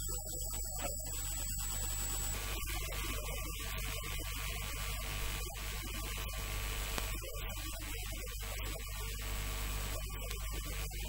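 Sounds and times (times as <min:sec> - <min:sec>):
electrical mains hum: 0:00.0 - 0:11.0
faint high whine: 0:00.0 - 0:11.0.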